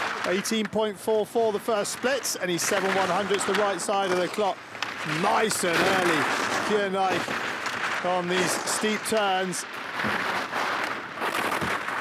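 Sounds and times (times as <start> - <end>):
skis scraping on snow: 0.0 - 12.0.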